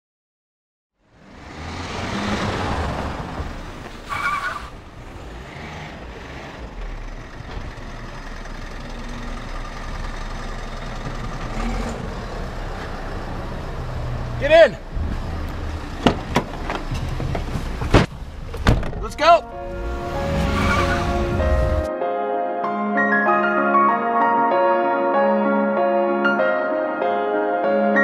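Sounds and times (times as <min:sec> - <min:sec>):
tyre noise on wet street: 0:01.1 - 0:21.9
van engine running: 0:04.7 - 0:21.9.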